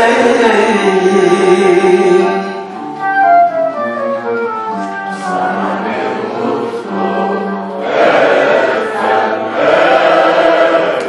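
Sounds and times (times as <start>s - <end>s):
flute: 2.2s - 8.0s
people singing together: 5.1s - 11.0s.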